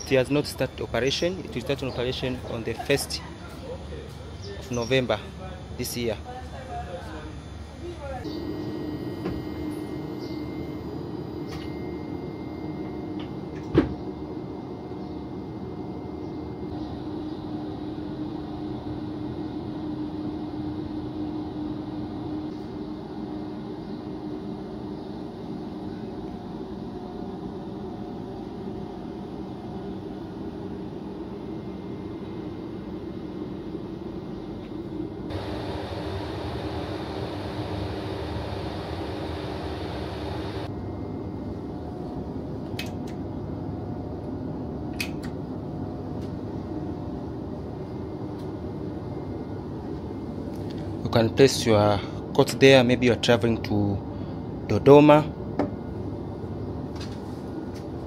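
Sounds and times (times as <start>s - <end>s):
train equipment hum: 28.0s - 43.6s.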